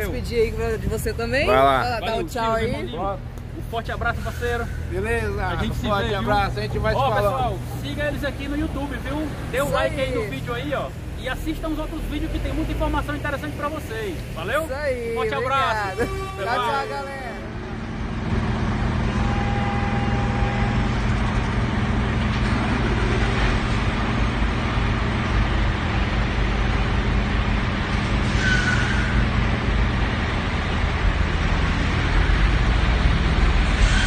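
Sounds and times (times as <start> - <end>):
diesel truck engine running: 0.0 - 16.3, 17.2 - 28.2
short high squeaks: 28.2 - 29.3.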